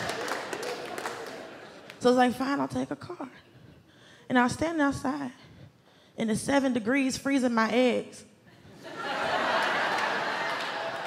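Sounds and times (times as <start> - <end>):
scattered claps: 0.0 - 2.0
audience laughter: 8.7 - 11.0.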